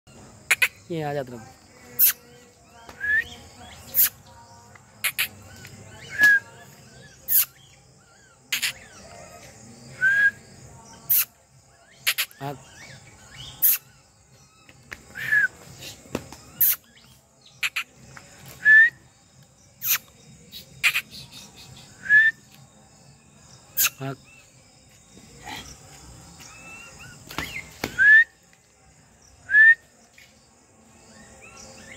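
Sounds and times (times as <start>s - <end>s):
bird chirping: 0.1s - 28.4s, 30.9s - 31.9s
faint high insect drone: 0.1s - 31.9s.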